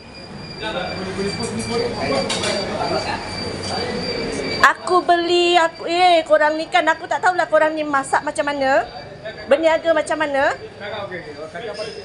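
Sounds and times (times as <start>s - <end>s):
indistinct voices: 0.0s - 12.0s
steady high-pitched whine: 0.0s - 12.0s.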